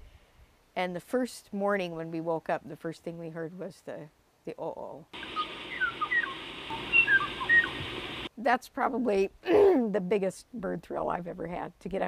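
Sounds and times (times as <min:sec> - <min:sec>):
recording hiss: 0:00.0 - 0:11.8
bird whistling notes: 0:05.2 - 0:08.3.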